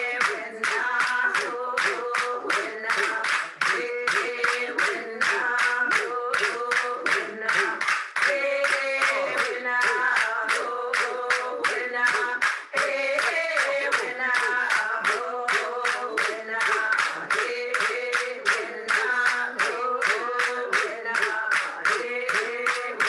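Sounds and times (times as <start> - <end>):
steady percussive beat: 0.0 - 23.0
voices singing: 0.0 - 23.0.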